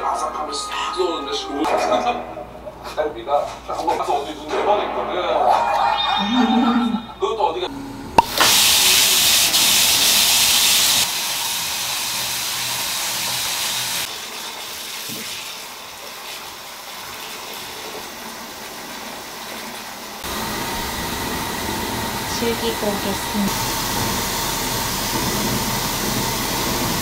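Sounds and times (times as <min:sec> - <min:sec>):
tap water pouring into bathtub: 0:09.5 - 0:20.2.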